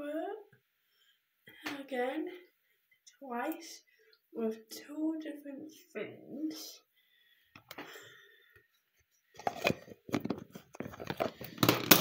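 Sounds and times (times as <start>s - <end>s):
hands handling skincare items: 9.0s - 12.0s
clicks and rustles: 9.4s - 12.0s.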